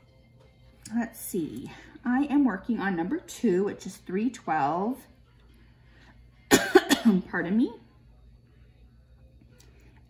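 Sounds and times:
woman coughing: 6.5 - 7.4.

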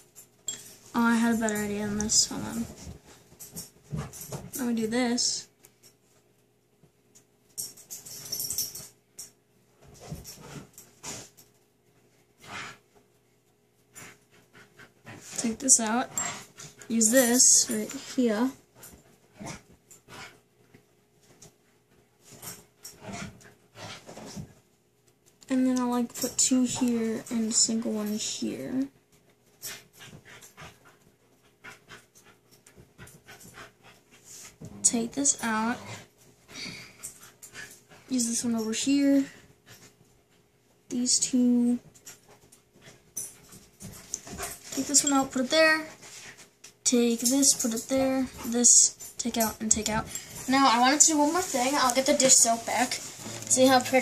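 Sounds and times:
dog panting: 13.8 - 20.5, 22.3 - 24.5, 29.6 - 38.4, 42.0 - 54.0.

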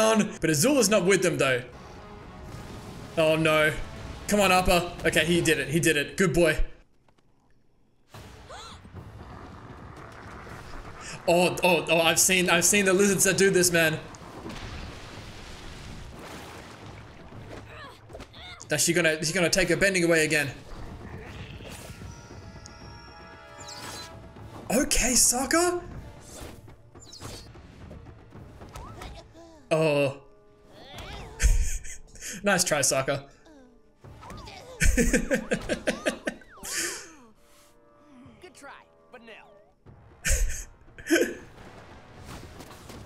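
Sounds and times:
faint background music: 21.1 - 43.0.

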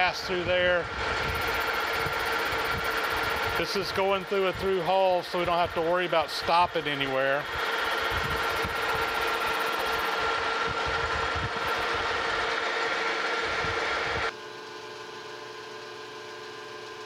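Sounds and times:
metal lathe whirring: 0.0 - 14.8.

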